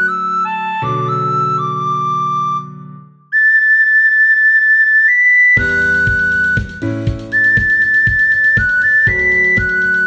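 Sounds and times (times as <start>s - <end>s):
soprano recorder repeated notes: 0.0s - 10.0s.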